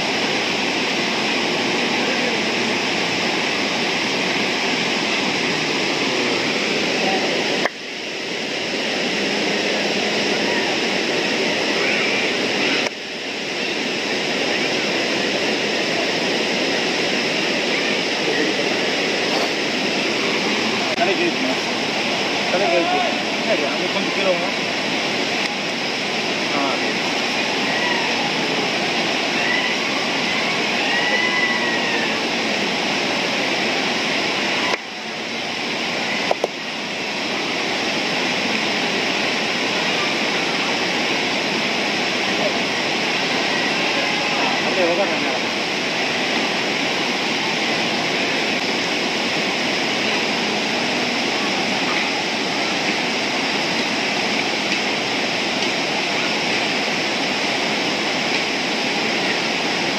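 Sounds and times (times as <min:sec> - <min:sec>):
river rapids rushing over rocks: 0:00.0 - 0:59.9.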